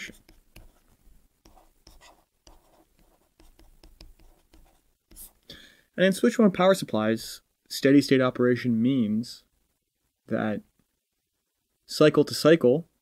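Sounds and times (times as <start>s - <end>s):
stylus writing on tablet screen: 0.0s - 5.4s.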